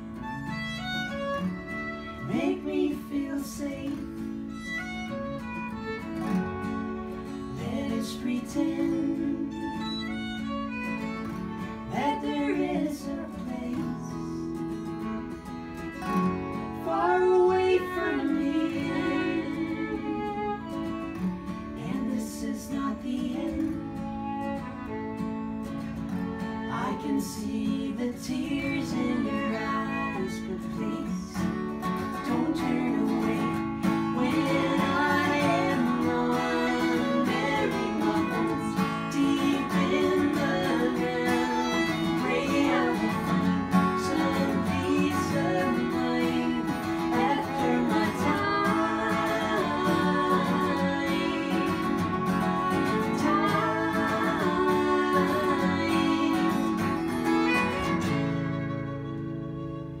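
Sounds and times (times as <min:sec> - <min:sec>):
acoustic guitars and fiddle: 0:00.0 - 1:00.0
voices singing: 0:00.6 - 0:15.0, 0:15.8 - 0:25.1, 0:26.3 - 0:58.6.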